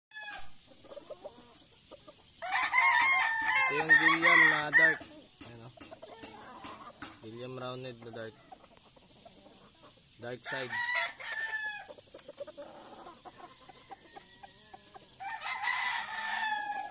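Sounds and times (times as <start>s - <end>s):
chickens clucking softly: 0.2s - 16.9s
rooster crowing: 2.4s - 5.1s, 10.5s - 11.9s, 13.6s - 16.9s.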